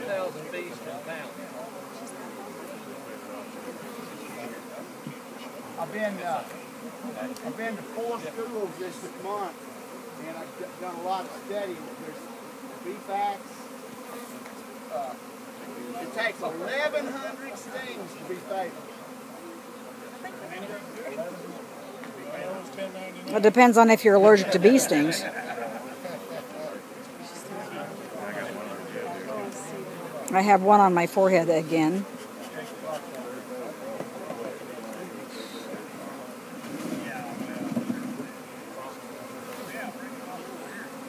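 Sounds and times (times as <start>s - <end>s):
faint voices: 0.0s - 41.0s
honey bees buzzing: 0.0s - 41.0s.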